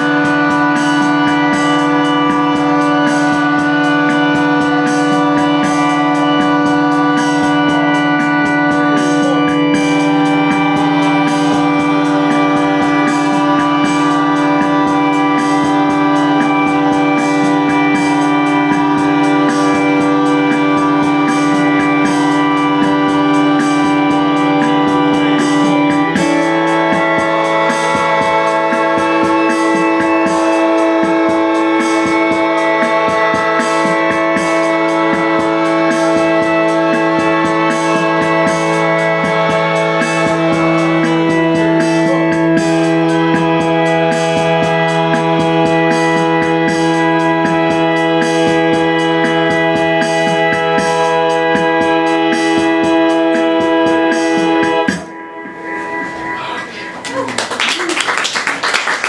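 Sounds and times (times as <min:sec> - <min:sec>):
organ-like drone music: 0:00.0 - 0:59.0.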